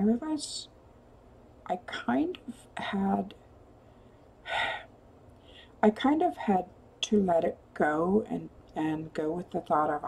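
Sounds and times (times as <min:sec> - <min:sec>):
woman speaking: 0:00.0 - 0:00.7, 0:01.7 - 0:03.4, 0:05.8 - 0:10.0
woman breathing in: 0:03.8 - 0:05.8.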